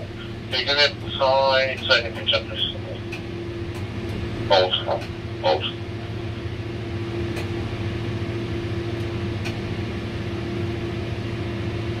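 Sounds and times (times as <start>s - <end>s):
crane cab machinery hum: 0.0s - 12.0s.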